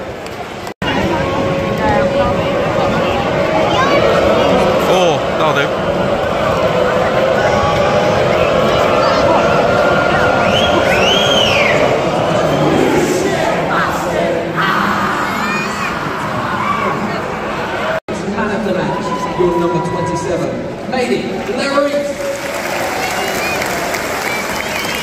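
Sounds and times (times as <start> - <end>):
stadium crowd chanting and cheering: 0.0 - 18.0, 22.1 - 25.0
whistle rising and falling: 10.4 - 12.8.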